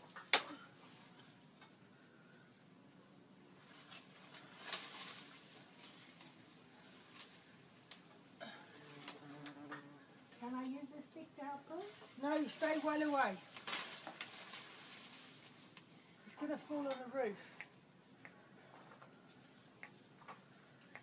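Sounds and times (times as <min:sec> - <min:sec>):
sharp snaps in foliage: 0:00.1 - 0:00.6, 0:03.6 - 0:06.4, 0:07.1 - 0:08.1, 0:09.0 - 0:09.7, 0:12.2 - 0:15.9, 0:16.7 - 0:18.4, 0:19.8 - 0:21.0
leaves and branches rustling: 0:03.4 - 0:17.8.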